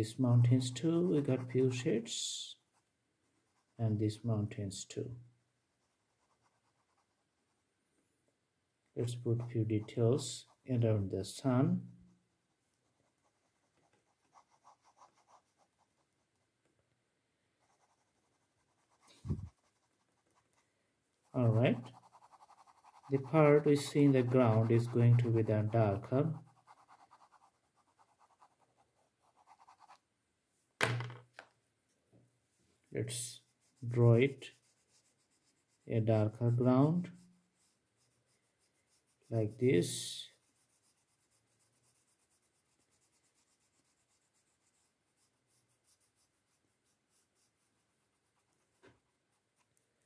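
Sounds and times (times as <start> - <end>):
pen scratching on paper: 5.7 - 7.6, 12.7 - 16.2, 17.6 - 20.6, 21.3 - 30.0, 33.1 - 49.8.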